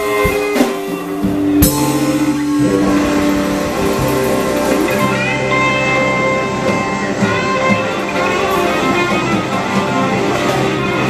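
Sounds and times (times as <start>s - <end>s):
bass guitar: 0.0s - 11.0s
blues-rock band playing: 0.0s - 11.0s
sustained electric guitar notes: 0.0s - 11.0s.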